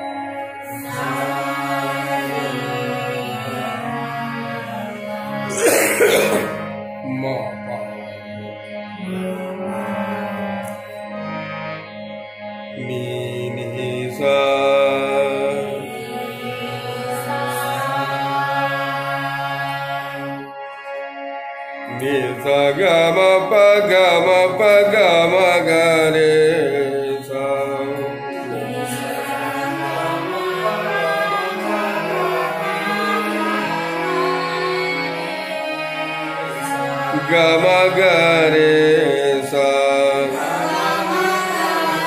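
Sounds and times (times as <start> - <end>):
harmonium holding a note: 0.0 - 42.0
person coughing: 5.5 - 6.7.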